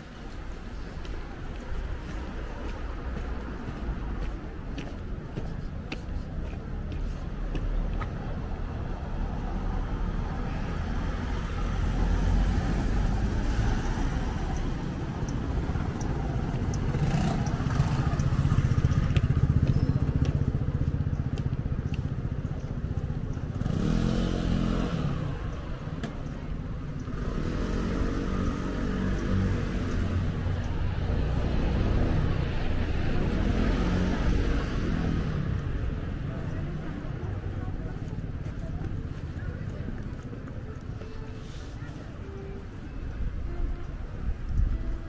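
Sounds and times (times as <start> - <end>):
low rumble of traffic: 0.0 - 45.0
passers-by talking: 0.0 - 45.0
vehicle passing: 22.8 - 42.9.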